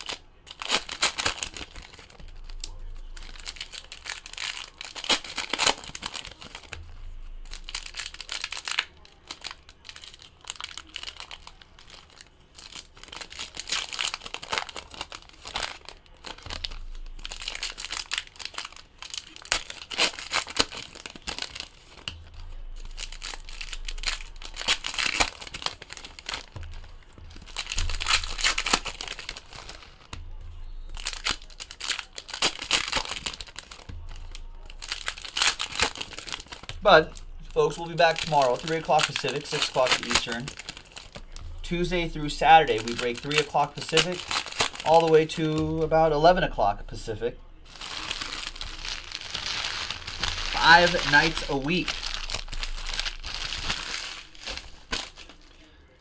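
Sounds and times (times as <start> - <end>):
foil wrappers crinkling and tearing: 0.0 - 56.0
cards rustling: 7.4 - 30.3, 30.9 - 55.7.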